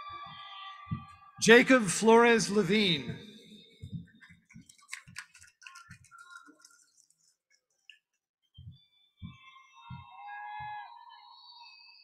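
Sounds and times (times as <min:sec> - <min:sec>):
audience cheering and whistling: 0:09.3 - 0:12.0.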